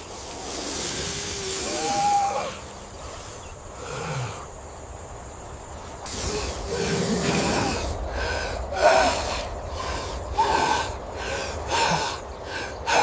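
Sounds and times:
snake hissing: 0.0s - 4.5s, 6.0s - 13.0s.

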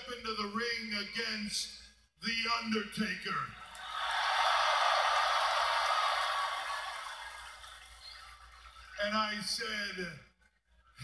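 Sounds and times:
crowd cheering through tv speaker: 3.6s - 9.0s.

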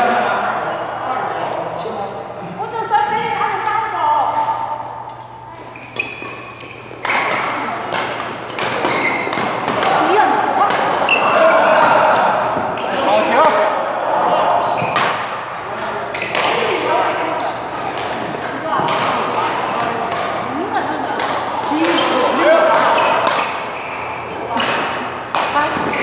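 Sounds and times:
racket hitting shuttlecock: 5.9s - 13.8s, 14.6s - 16.9s, 17.7s - 26.0s.

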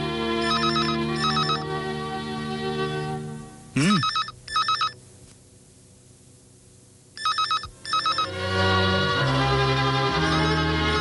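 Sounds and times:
telephone ringing: 0.4s - 1.7s, 4.0s - 5.0s, 7.2s - 8.6s, 10.1s - 11.0s.

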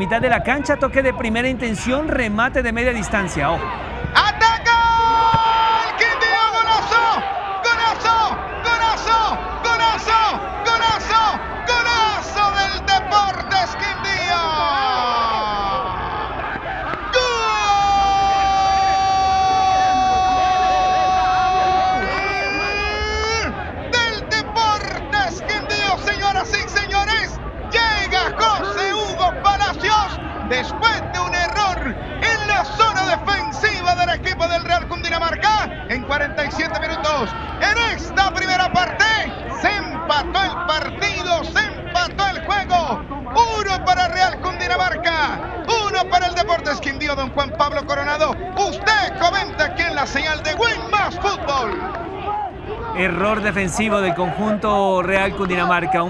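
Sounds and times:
commentator shouting excitedly: 0.0s - 15.9s, 52.9s - 56.0s
crowd hubbub: 0.0s - 56.0s.

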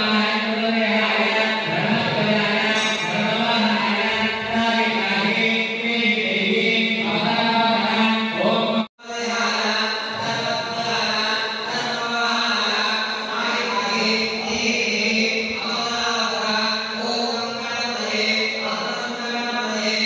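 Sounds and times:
mantra chanting: 0.0s - 20.0s.

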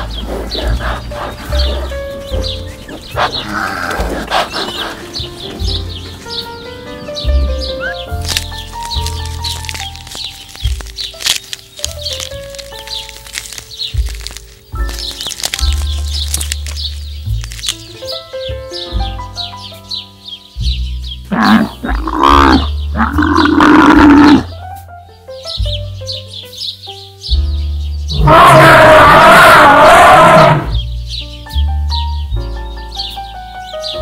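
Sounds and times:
rough animal call: 0.0s - 5.9s, 7.8s - 17.8s, 21.3s - 24.5s, 28.1s - 30.8s
background music with steady beat: 13.7s - 28.3s
pitch-bending animal call: 21.3s - 24.5s, 28.2s - 30.8s.

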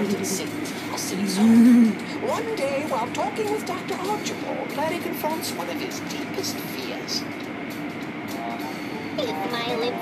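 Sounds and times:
low machinery hum: 0.0s - 10.0s.

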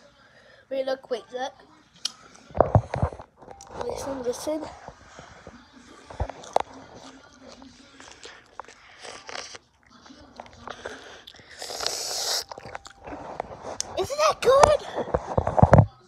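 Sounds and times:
person chewing wet bites: 6.0s - 14.0s
mouth clicks and smacks: 10.4s - 13.1s.

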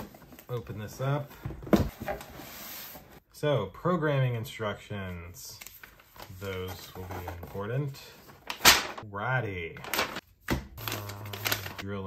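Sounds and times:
paper rustling and crinkling: 5.5s - 9.0s, 9.8s - 10.2s, 10.8s - 11.8s.

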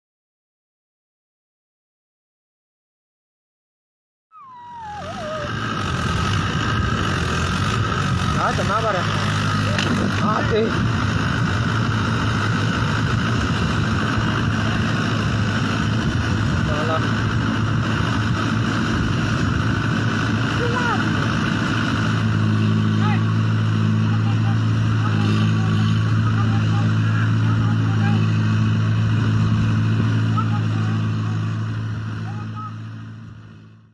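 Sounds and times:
wavering falling wail: 4.3s - 6.7s
faint voices calling out: 4.4s - 6.7s
tractor engine running hard: 4.4s - 33.9s.

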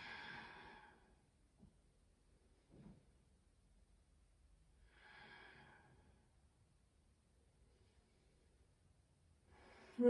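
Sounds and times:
breathy exhale: 4.9s - 6.2s.

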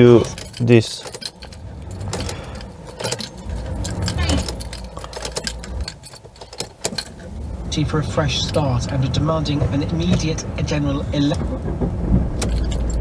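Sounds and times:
car keys jangling: 0.0s - 13.0s.

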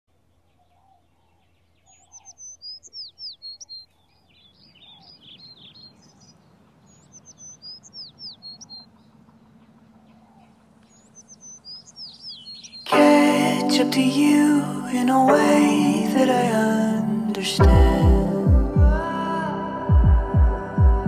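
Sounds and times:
songbirds chirping and whistling: 0.1s - 18.5s.

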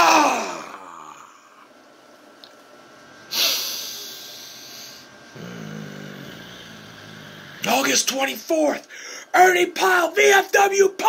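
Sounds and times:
man humming low: 5.3s - 7.7s.

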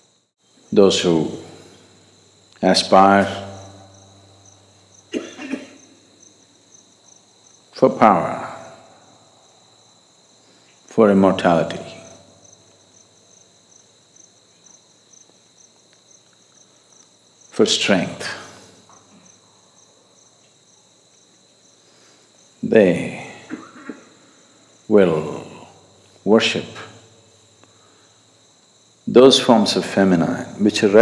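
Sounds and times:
faint crickets chirping: 0.0s - 31.0s.

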